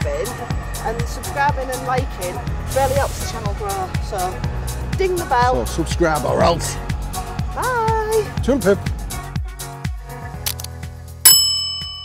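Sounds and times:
bright bell ding: 11.3s - 12.0s.

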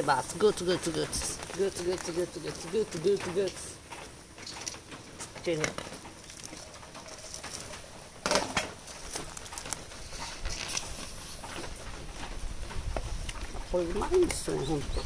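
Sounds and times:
bird calls: 13.6s - 15.0s.

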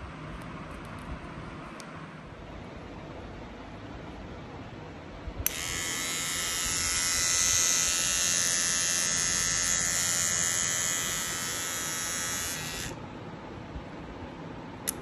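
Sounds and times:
electric toothbrush motor whine: 5.4s - 13.0s.

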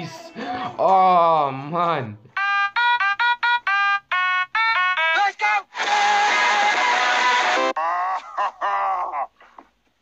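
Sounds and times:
electronic toy instrument notes: 2.3s - 5.2s.

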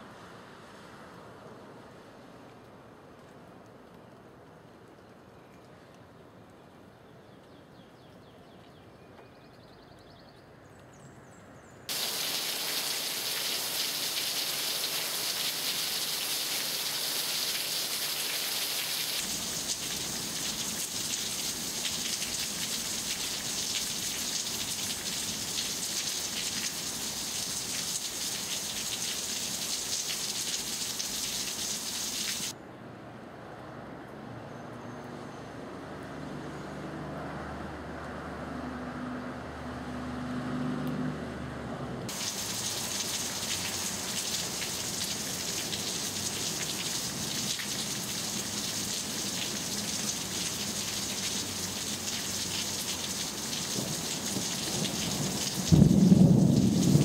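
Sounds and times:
loud steady hiss: 11.9s - 32.5s, 42.1s - 57.0s
quieter hiss: 11.9s - 32.6s, 42.1s - 57.0s.

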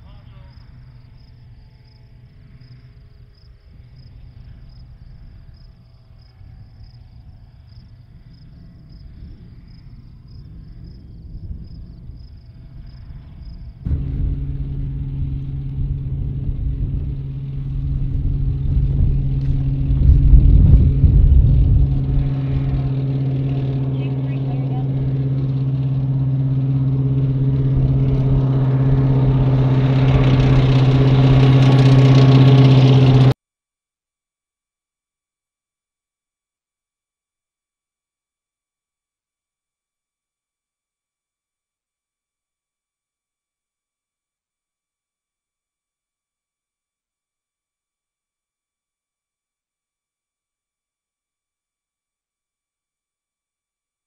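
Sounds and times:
military vehicle engine rumbling: 0.0s - 33.4s
insect chirring: 0.4s - 13.8s.

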